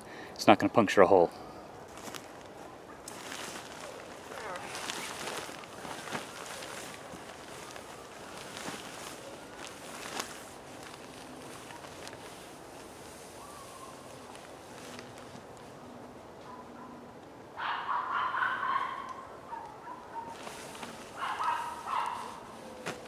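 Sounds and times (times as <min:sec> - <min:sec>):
tarp fabric rustling: 0:01.9 - 0:15.8, 0:20.2 - 0:23.0
shuffling on dry leaves: 0:01.9 - 0:15.9, 0:20.1 - 0:23.0.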